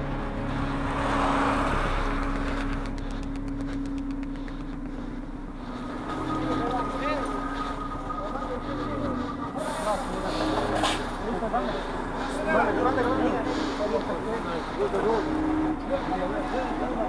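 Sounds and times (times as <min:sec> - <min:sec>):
car passing close: 0:00.0 - 0:04.0
steady engine hum: 0:00.0 - 0:17.0
voices: 0:05.8 - 0:17.0.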